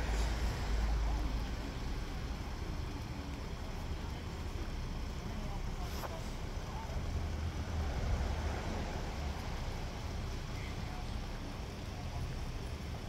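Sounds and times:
faint distant voices: 0.0s - 13.0s
steady low rumble: 0.0s - 13.0s.

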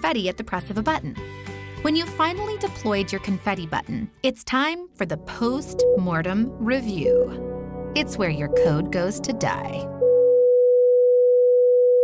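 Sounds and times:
heart monitor flatline tone: 5.8s - 6.3s, 10.0s - 12.0s.

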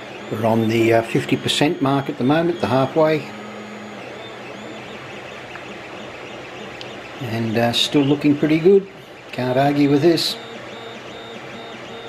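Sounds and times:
three d printer whirring: 0.0s - 12.0s.

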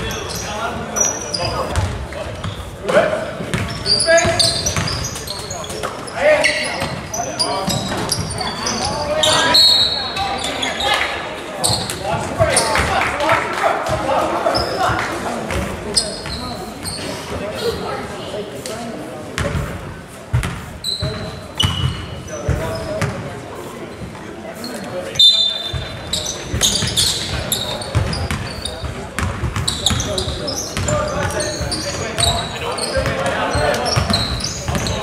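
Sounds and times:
sneakers squeaking: 0.0s - 13.1s, 13.8s - 35.0s
voices echoing in a hall: 0.0s - 35.0s
basketball bouncing on court: 1.6s - 2.6s, 3.4s - 5.9s, 6.8s - 8.4s, 19.4s - 23.3s, 25.6s - 35.0s.

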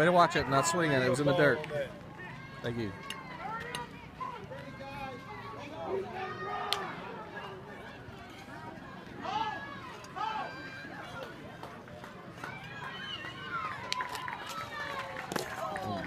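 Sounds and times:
people calling out and chattering: 0.0s - 16.0s.

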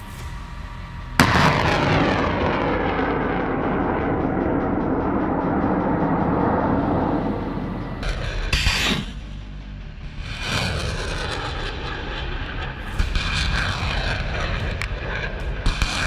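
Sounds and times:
rocket launch blast: 1.2s - 9.2s, 13.0s - 16.0s.

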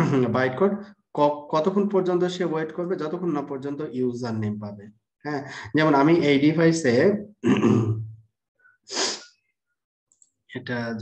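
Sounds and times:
person's sharp breath: 8.6s - 9.4s.

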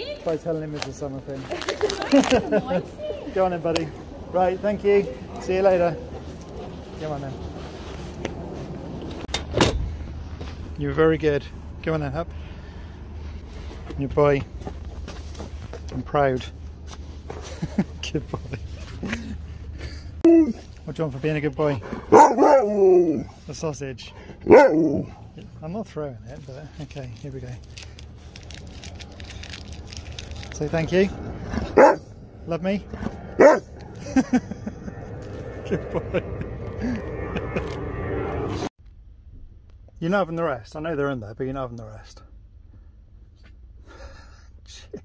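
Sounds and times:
plastic wrapper crinkling and tearing: 1.5s - 2.4s, 26.3s - 30.9s
steady low rumble: 23.2s - 44.5s.

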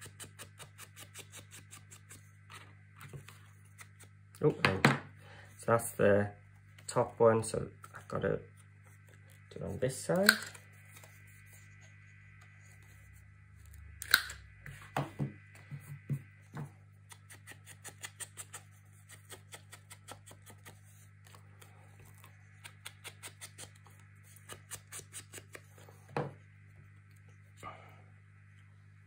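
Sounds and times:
low hum: 2.0s - 17.8s, 25.4s - 29.0s.

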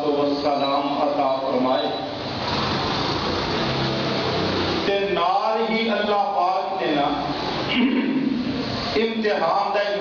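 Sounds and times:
engine rumble with hiss: 0.0s - 10.0s.

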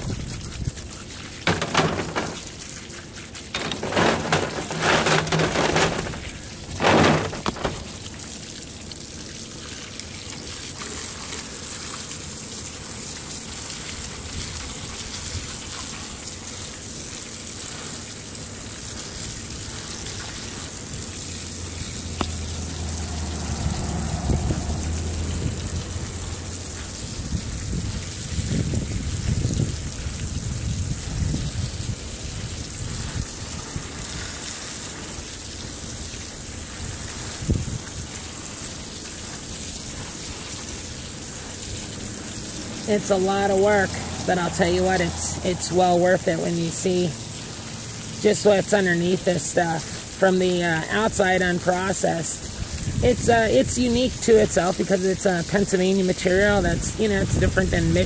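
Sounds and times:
water jet spraying on metal: 0.0s - 58.0s
low rumbles and thumps: 1.4s - 2.8s, 3.5s - 8.3s, 21.8s - 29.8s.

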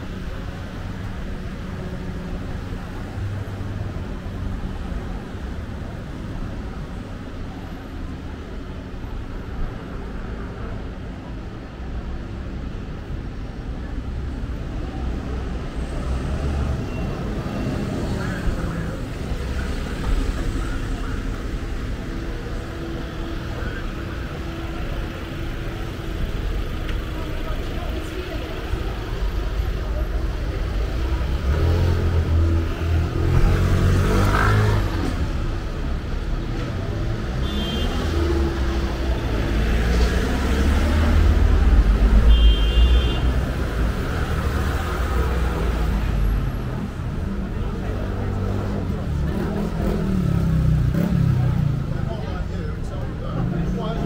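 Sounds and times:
road traffic rumbling past: 13.8s - 54.0s.

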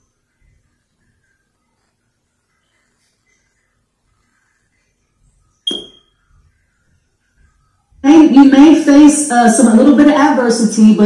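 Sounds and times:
bright ringing ping: 5.7s - 6.1s.

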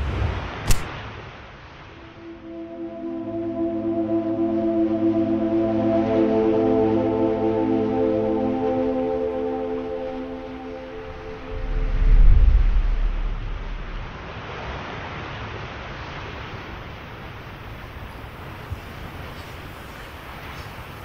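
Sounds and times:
ocean surf: 0.0s - 21.0s
wind: 0.0s - 21.0s
ambient music drone: 2.0s - 14.3s
deep low rumble: 10.2s - 14.4s.

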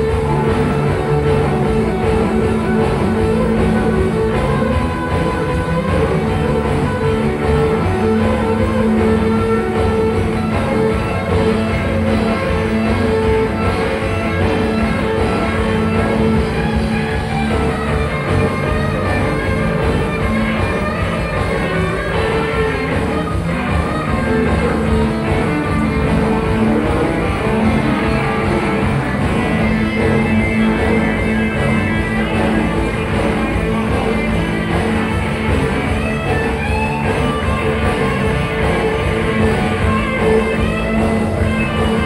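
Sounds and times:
bass guitar: 0.0s - 42.0s
drum kit: 0.0s - 42.0s
electric guitars: 0.0s - 42.0s.

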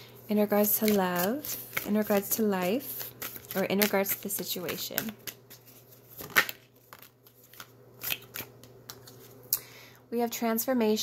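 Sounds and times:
cards being shuffled: 0.5s - 9.4s.

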